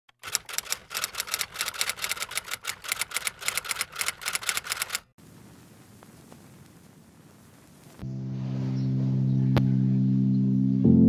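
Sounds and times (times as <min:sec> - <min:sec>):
typewriter keys clacking: 0:00.1 - 0:05.1.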